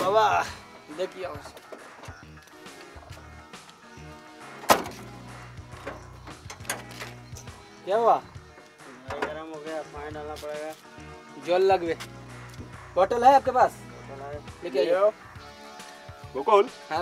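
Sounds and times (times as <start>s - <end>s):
car door slamming: 4.6s - 7.2s.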